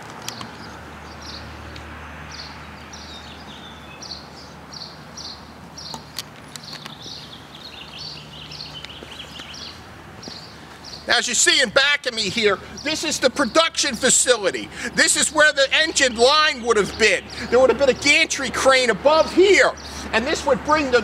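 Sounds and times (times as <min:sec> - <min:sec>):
small bird chirping: 0:02.3 - 0:11.1.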